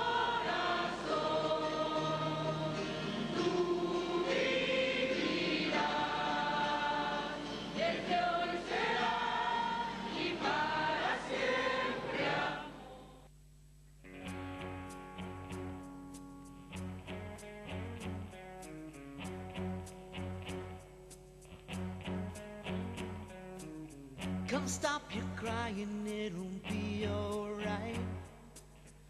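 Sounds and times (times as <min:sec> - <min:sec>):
choir singing with accompaniment: 0:00.0 - 0:13.3.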